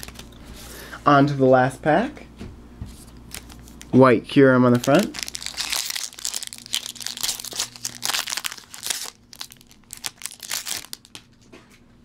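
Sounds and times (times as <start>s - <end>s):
foil wrapper crinkling: 0.0s - 0.4s, 3.2s - 3.9s, 4.7s - 11.4s.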